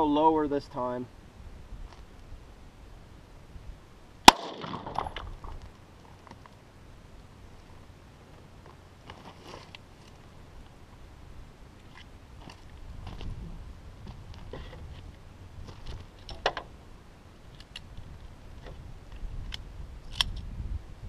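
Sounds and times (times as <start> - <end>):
pistol shot with echo: 4.3 - 5.1
footsteps on gravel: 8.6 - 10.2, 12.0 - 13.4.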